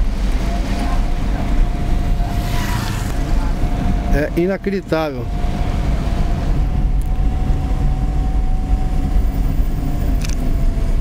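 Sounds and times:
car engine and road rumble: 0.0s - 11.0s
wind noise: 0.0s - 11.0s.

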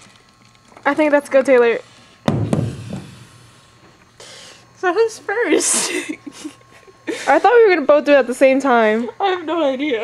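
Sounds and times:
blender jar thunk on table: 2.3s - 3.2s.

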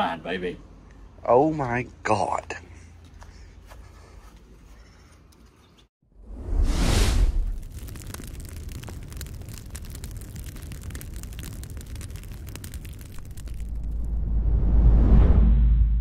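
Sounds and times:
low rumble: 6.1s - 16.0s
fire crackling: 6.2s - 14.6s
loud burst of flame: 6.2s - 15.7s.

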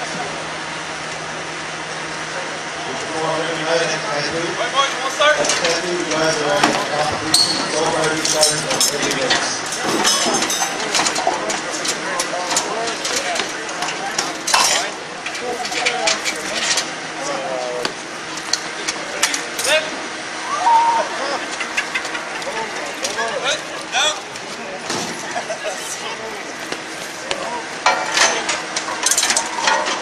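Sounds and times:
voices talking: 0.0s - 30.0s.

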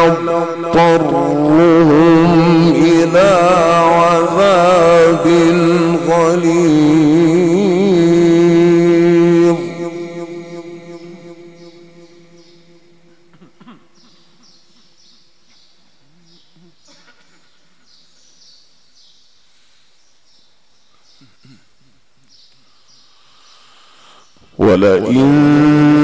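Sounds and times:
man reciting with vibrato: 0.0s - 15.0s, 24.0s - 26.0s
high bird chirps: 10.8s - 19.3s.

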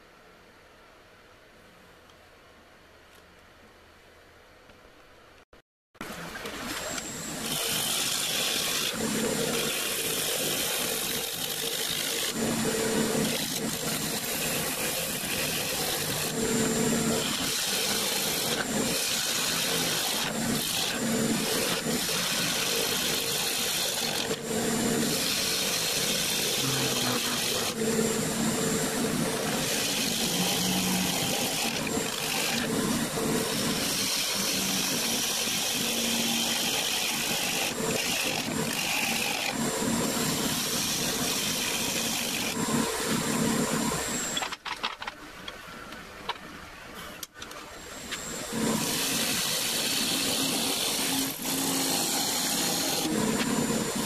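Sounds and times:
gouge cutting spinning wood: 6.4s - 44.4s, 47.9s - 54.0s
lathe motor hum: 6.4s - 44.4s, 47.9s - 54.0s.

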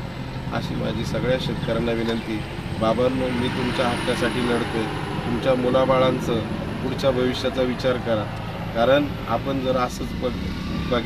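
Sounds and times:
steady low rumble: 0.0s - 10.1s
man speaking: 0.5s - 11.0s.

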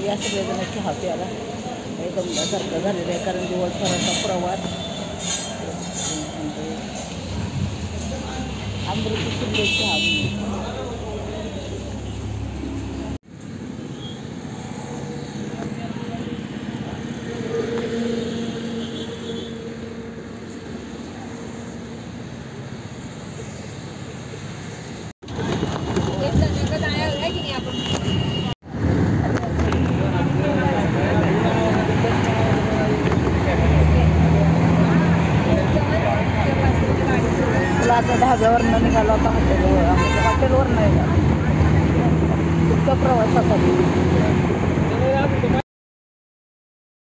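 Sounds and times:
people talking: 0.0s - 4.8s, 5.5s - 12.1s, 26.0s - 28.1s, 29.1s - 45.6s
vehicle road and engine noise: 0.0s - 45.6s.

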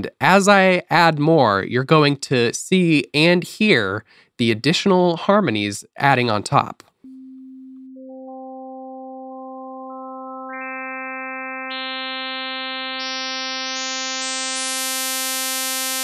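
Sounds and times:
synthesizer holding one note: 7.1s - 16.0s.

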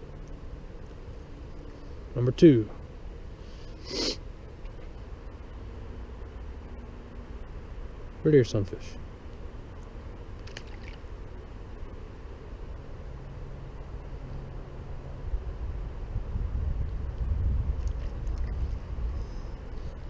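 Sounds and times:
wind buffeting microphone: 15.2s - 20.0s.

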